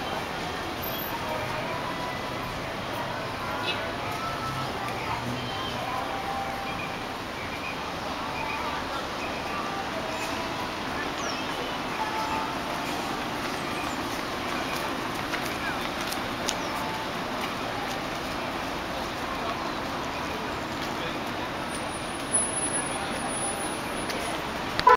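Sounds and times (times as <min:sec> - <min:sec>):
indistinct voices: 0:00.0 - 0:24.9
traffic hum: 0:00.0 - 0:24.9.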